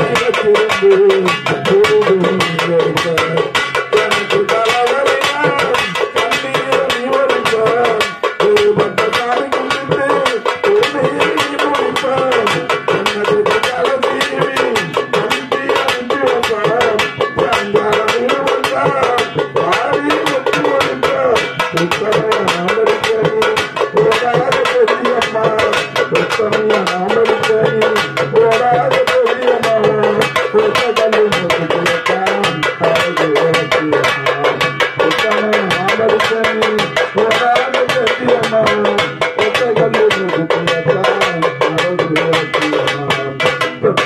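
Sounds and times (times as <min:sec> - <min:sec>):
hand drums beating: 0:00.0 - 0:44.0
man singing folk song: 0:00.0 - 0:44.0.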